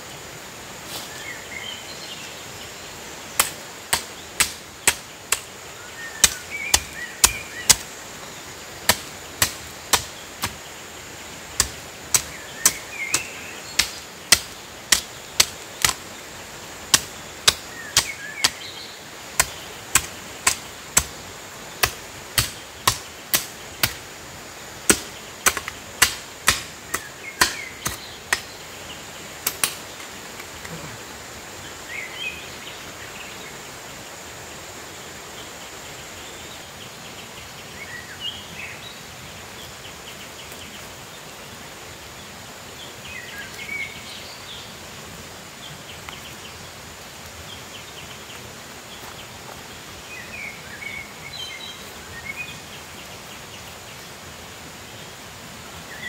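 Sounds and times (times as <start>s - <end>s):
hoe chopping into stony soil: 3.4s - 5.5s, 6.2s - 7.9s, 8.9s - 10.6s, 11.6s - 16.0s, 19.4s - 21.2s, 21.8s - 24.0s, 24.9s - 28.5s.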